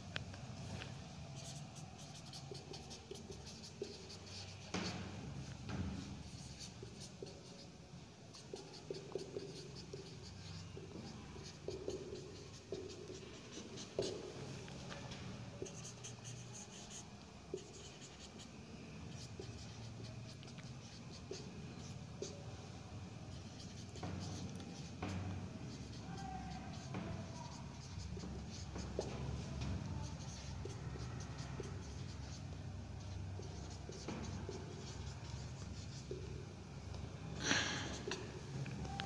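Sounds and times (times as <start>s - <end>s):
marker pen squeaking on whiteboard: 23.4s - 32.4s.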